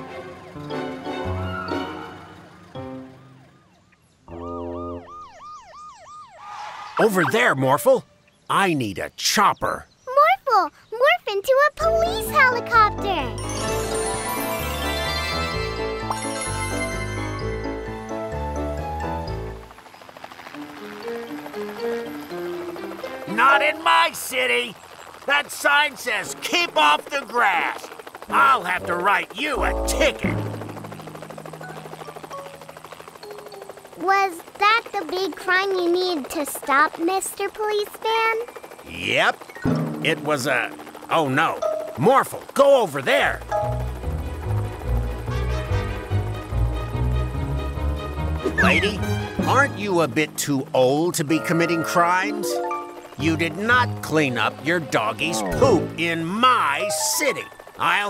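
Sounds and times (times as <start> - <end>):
cartoon police siren wailing: 1.2 - 7.9, 28.3 - 30.6, 53.2 - 58.0
cartoon helicopter rotor chop: 4.3 - 7.8, 11.0 - 18.4, 19.0 - 58.0.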